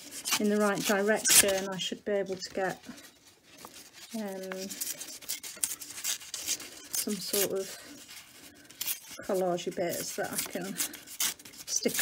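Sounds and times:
paper tearing: 0.0 - 2.0, 3.5 - 12.0.

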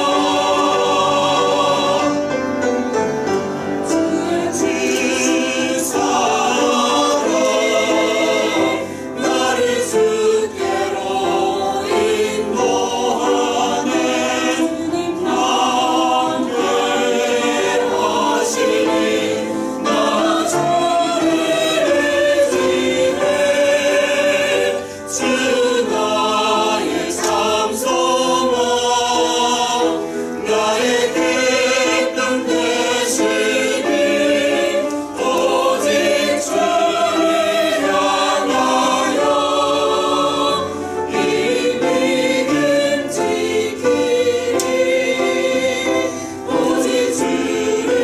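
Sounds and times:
choir singing a hymn: 0.0 - 48.0.

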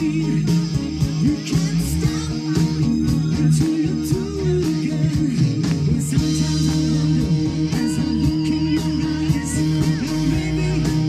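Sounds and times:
bass guitar: 0.0 - 11.0
drums: 0.0 - 11.0
electric guitar: 0.0 - 11.0
man singing lead vocals: 0.0 - 11.0.

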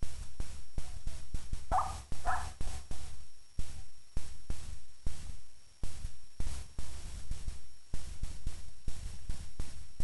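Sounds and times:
dull thumps: 0.0 - 10.0.

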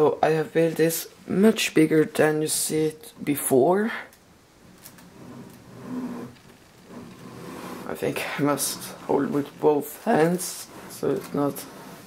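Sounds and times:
plastic bricks shifted on table: 4.8 - 12.0.

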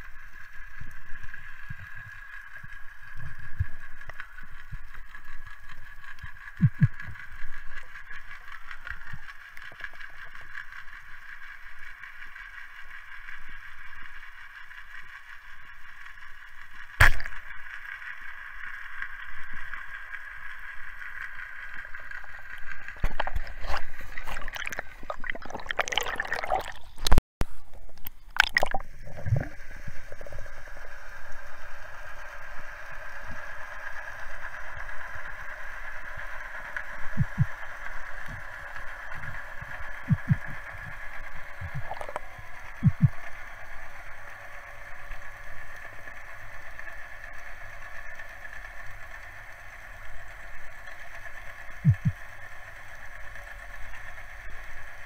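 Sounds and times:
underwater bubbling: 0.0 - 10.8, 20.9 - 32.4, 34.4 - 43.8, 51.8 - 52.3
water gurgling and sloshing: 0.0 - 10.8, 21.1 - 32.4, 35.8 - 43.4, 51.8 - 52.2.

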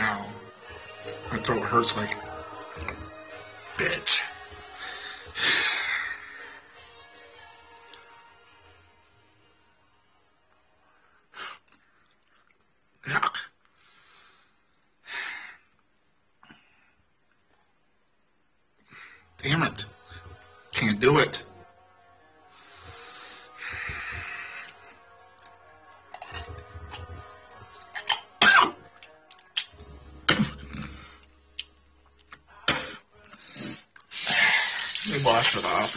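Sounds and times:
man coughing and gagging: 27.9 - 28.8, 30.3 - 31.0.

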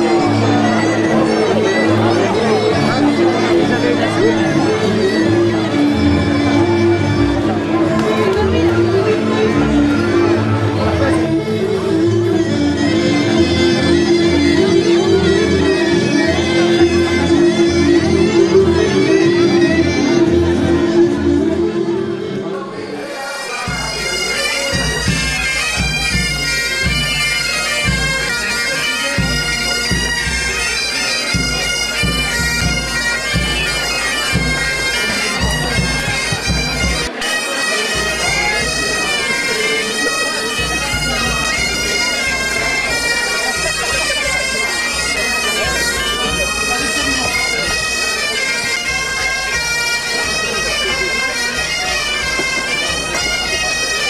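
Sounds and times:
bagpipe playing a tune: 0.0 - 54.0
woodwind melody: 0.0 - 54.0.

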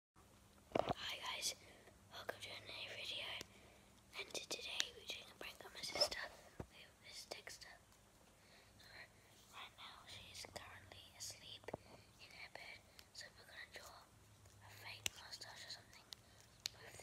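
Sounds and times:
boy whispering: 0.9 - 3.5, 4.1 - 7.8, 8.8 - 17.0.

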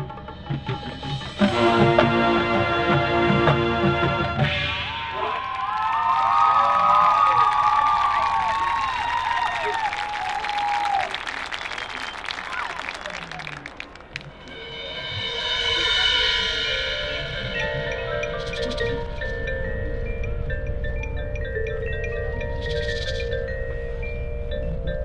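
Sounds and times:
crowd cheering and whooping: 4.9 - 14.3
applause: 5.2 - 14.3
mallet percussion chords: 14.2 - 25.0.

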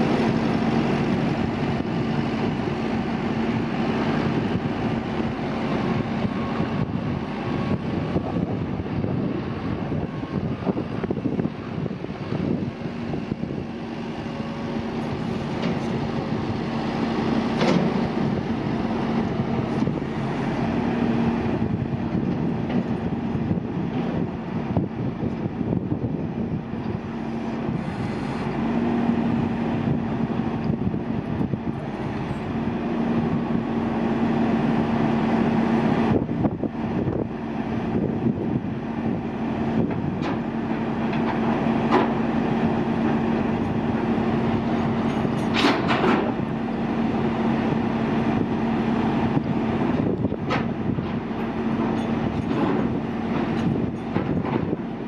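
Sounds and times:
diesel engine humming: 0.0 - 55.0.

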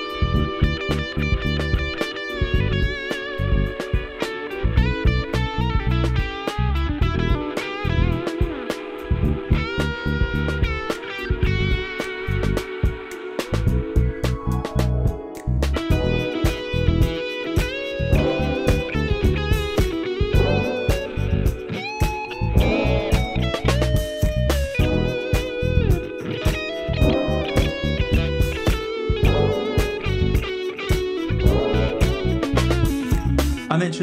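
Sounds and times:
electric guitar lead line: 0.0 - 13.9, 15.8 - 34.0.

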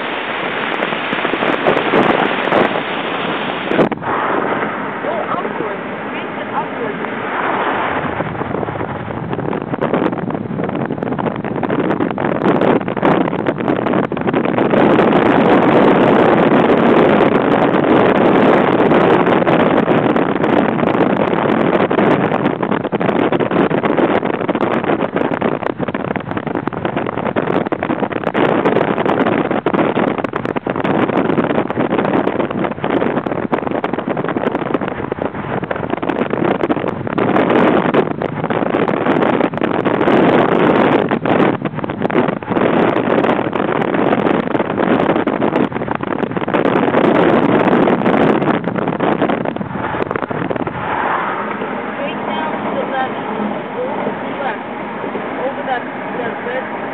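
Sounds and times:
car wind and road noise: 0.0 - 56.9.

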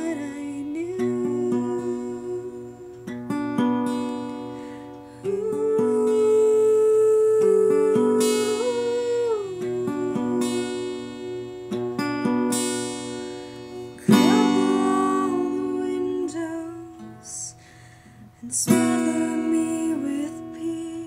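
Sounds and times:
woman singing long notes: 0.0 - 3.8, 5.0 - 11.8, 14.0 - 17.8, 18.4 - 21.0
acoustic guitar strumming: 0.0 - 21.0.

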